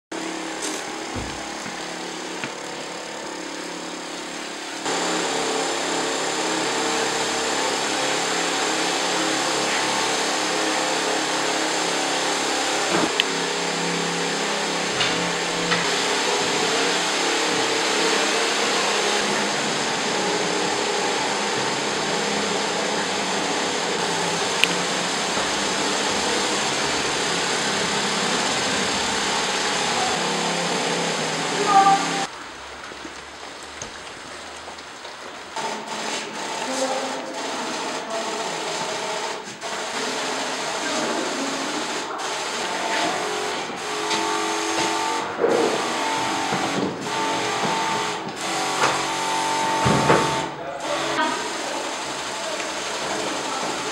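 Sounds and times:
sprayer hissing: 0.1 - 53.9.

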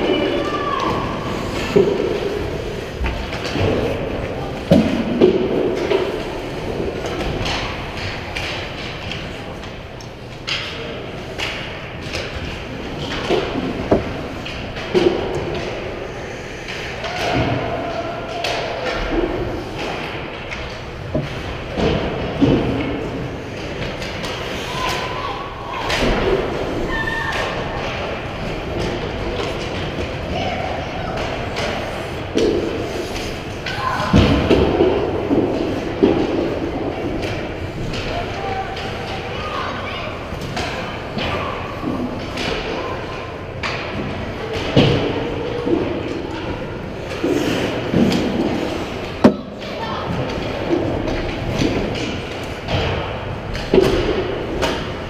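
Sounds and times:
hockey sticks and puck knocking: 0.0 - 16.0, 18.3 - 25.2, 25.8 - 39.7, 40.3 - 55.0.

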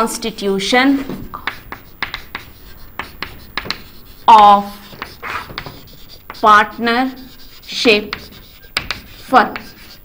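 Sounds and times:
chalk scratching on chalkboard: 0.0 - 10.0.

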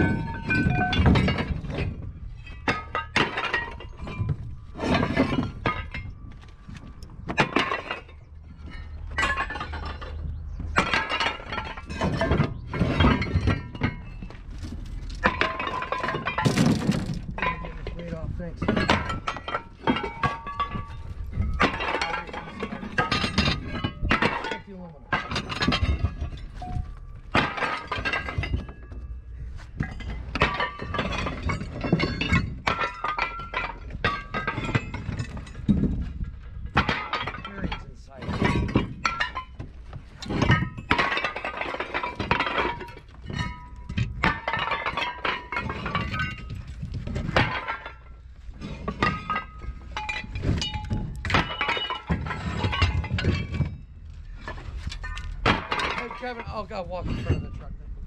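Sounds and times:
scrap metal clanking onto heap: 0.0 - 57.8.

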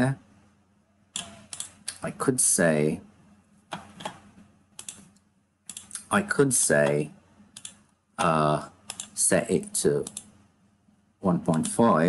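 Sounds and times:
computer mouse clicks: 1.2 - 2.0, 3.7 - 6.1, 6.8 - 9.2, 10.0 - 10.3, 11.5 - 11.8.

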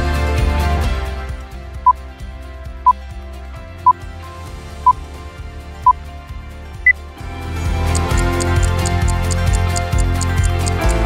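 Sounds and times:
soft background music: 0.0 - 11.0
countdown timer beeps: 7.9 - 11.0.

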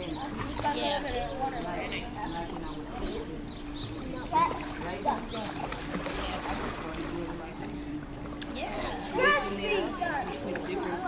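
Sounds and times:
faint voices in swimming pool: 0.0 - 11.0
steady low hum: 0.0 - 11.0.

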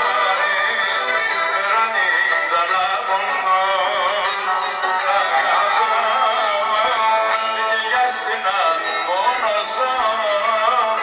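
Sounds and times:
live band over speakers: 0.0 - 11.0
man singing: 0.0 - 11.0.

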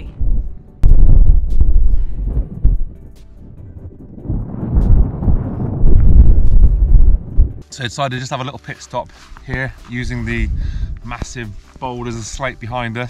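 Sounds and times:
gusting wind buffeting microphone: 0.0 - 7.6, 10.0 - 11.4.

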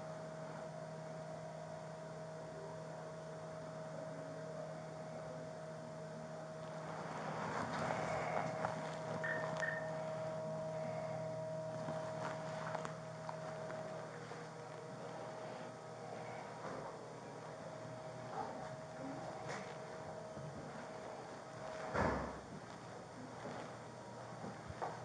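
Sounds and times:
electrical hum: 0.0 - 25.0
short high beeps: 9.2 - 10.0.

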